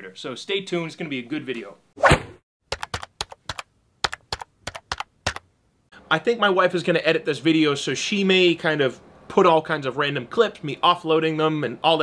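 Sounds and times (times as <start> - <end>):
keyboard typing clicks: 2.7 - 5.4.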